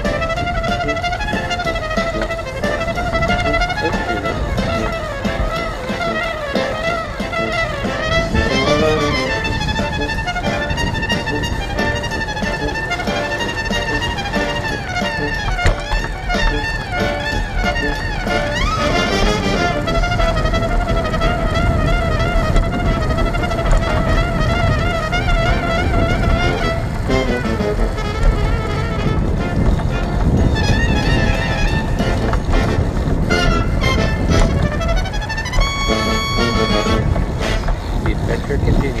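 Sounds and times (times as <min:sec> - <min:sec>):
instrumental melody with vibrato: 0:00.0 - 0:38.1
bicycle rolling on pavement: 0:00.0 - 0:39.0
wind on microphone: 0:00.0 - 0:39.0
people's voices: 0:36.4 - 0:39.0.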